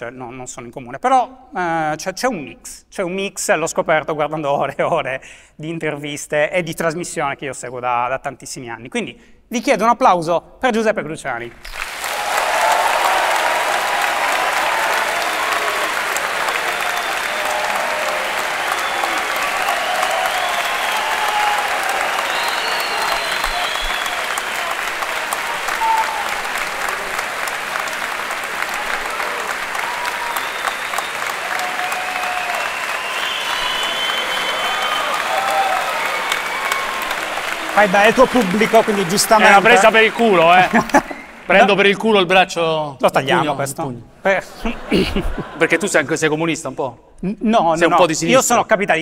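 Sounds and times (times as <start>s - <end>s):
audience applauding: 11.5s - 42.0s.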